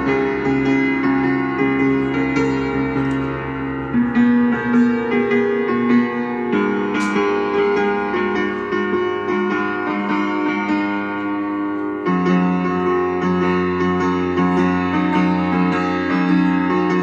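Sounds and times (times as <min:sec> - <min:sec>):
piano chords and melody: 0:00.0 - 0:17.0.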